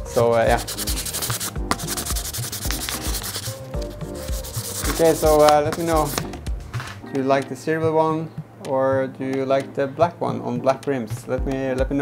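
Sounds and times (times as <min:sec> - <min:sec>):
sandpaper sanding plastic: 0:00.2 - 0:06.3.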